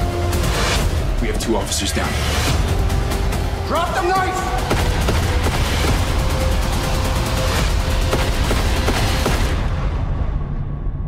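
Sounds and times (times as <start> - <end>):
dramatic trailer music: 0.0 - 11.0
rapid gunfire: 4.6 - 9.8.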